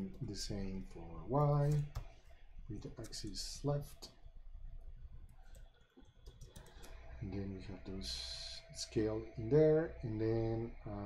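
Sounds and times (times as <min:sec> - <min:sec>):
keyboard keys clicking: 0:06.2 - 0:06.9.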